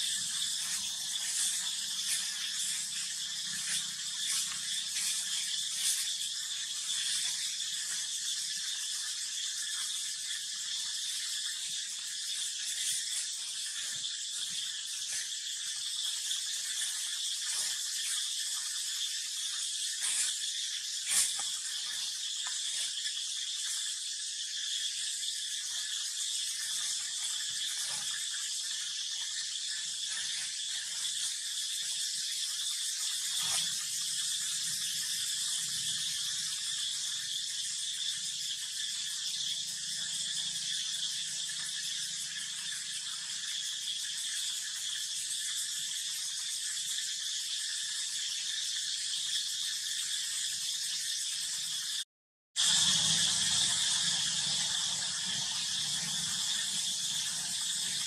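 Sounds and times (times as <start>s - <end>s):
high-pitched insect drone: 0.0s - 58.0s.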